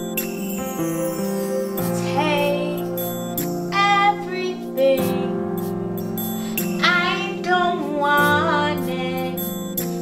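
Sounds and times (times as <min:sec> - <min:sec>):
keyboard chords: 0:00.0 - 0:10.0
woman singing: 0:02.0 - 0:03.0, 0:03.7 - 0:05.4, 0:06.8 - 0:10.0.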